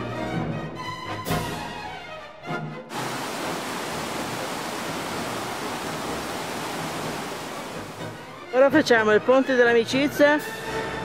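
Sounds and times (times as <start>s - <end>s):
mountain torrent rushing over rocks: 2.9s - 8.4s
orchestral music: 6.9s - 8.8s.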